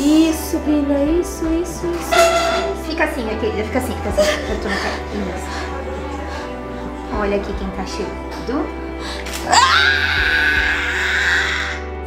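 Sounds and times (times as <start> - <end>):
background music: 0.0 - 12.0
woman screaming: 9.5 - 11.8.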